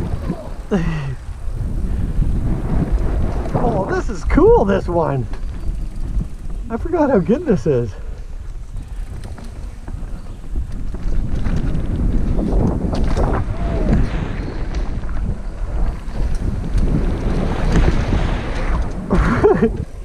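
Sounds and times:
bike rumbling and rattling on dirt: 0.0s - 20.0s
wind buffeting microphone: 0.0s - 20.0s.

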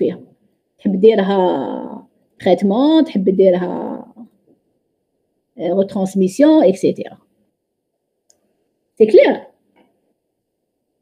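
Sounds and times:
person speaking: 0.0s - 4.4s, 5.5s - 7.3s, 9.0s - 9.7s.

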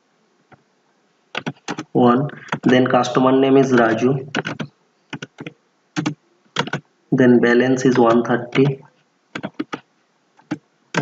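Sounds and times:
computer keyboard clicks: 1.4s - 1.9s, 3.7s - 6.8s, 9.4s - 9.8s, 10.4s - 11.0s.

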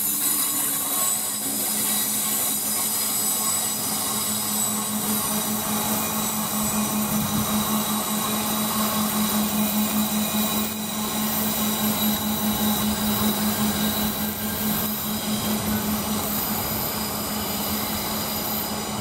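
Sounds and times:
train rolling on tracks: 0.0s - 19.0s.

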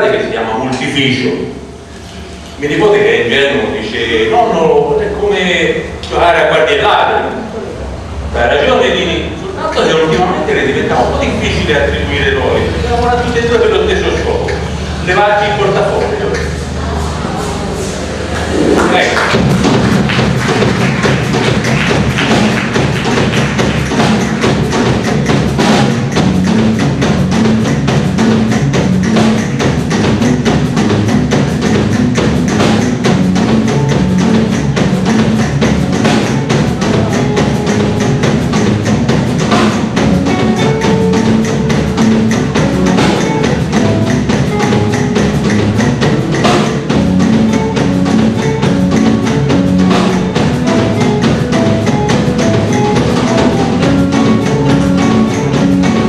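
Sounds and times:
bass guitar: 7.2s - 56.0s
acoustic guitar: 9.6s - 56.0s
steady drum beat: 9.8s - 56.0s
electric guitar: 28.4s - 56.0s.

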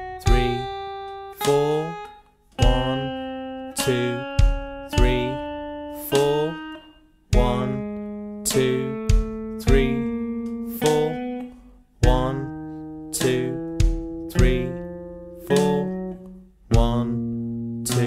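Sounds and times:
guitar strumming slow chords: 0.0s - 18.0s.

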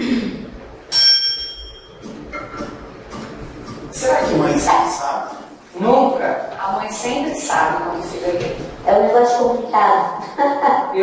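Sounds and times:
bright bell ding: 0.9s - 2.0s.

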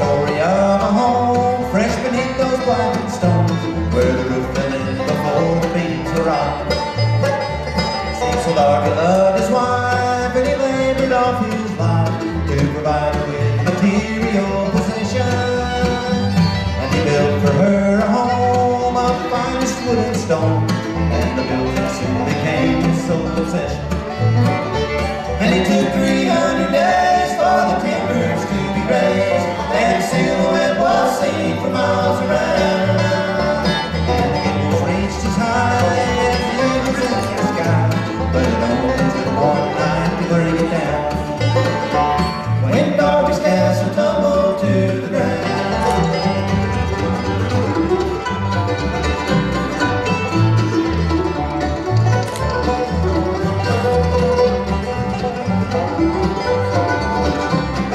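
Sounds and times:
banjo: 0.0s - 57.9s
fiddle: 0.0s - 57.9s
guitar: 0.0s - 57.9s
mandolin: 0.0s - 57.9s
upright bass line: 0.0s - 57.9s.

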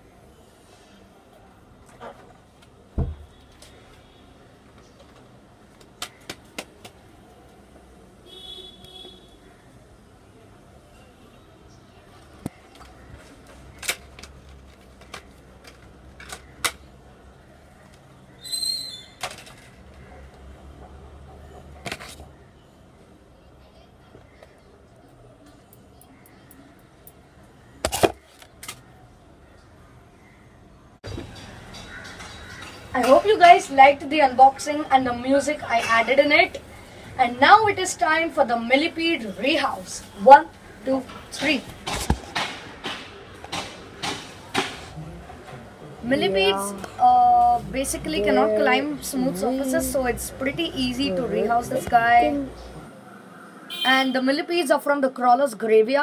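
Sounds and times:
plastic packaging clicking and crackling: 12.5s - 16.9s.

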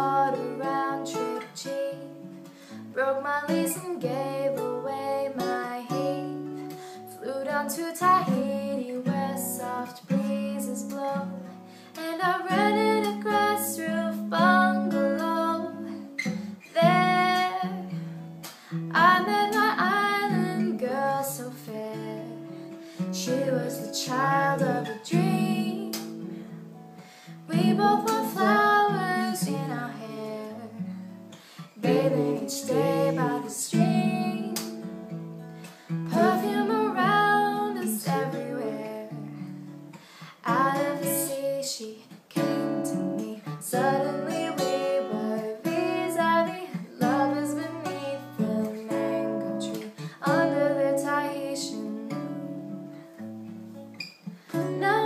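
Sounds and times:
woman singing: 0.0s - 26.6s, 27.3s - 30.9s, 31.6s - 35.0s, 36.1s - 39.7s, 40.3s - 52.9s, 54.5s - 55.0s
acoustic guitar strumming: 8.1s - 41.3s, 42.4s - 55.0s.

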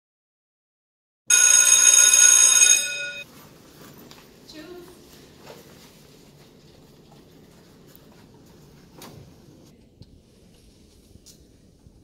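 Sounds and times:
school bell ringing: 1.3s - 3.3s.

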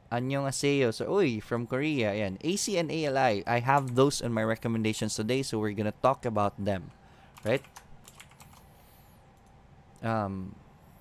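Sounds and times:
keyboard typing: 3.7s - 4.1s, 7.3s - 8.7s.

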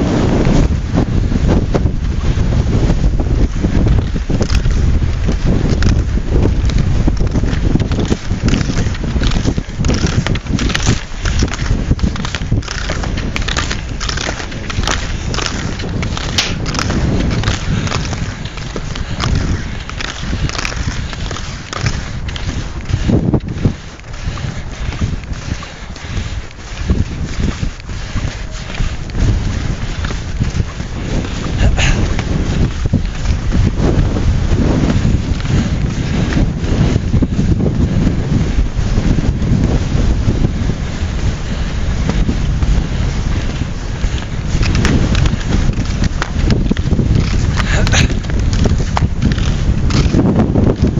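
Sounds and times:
strong wind buffeting microphone: 0.0s - 50.9s.

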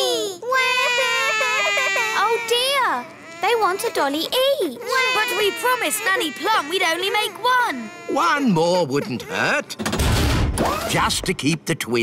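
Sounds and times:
small children crying: 0.0s - 9.6s.

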